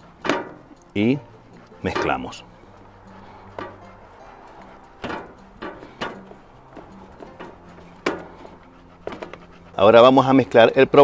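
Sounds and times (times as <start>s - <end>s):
quiet background music with bass: 0.0s - 11.0s.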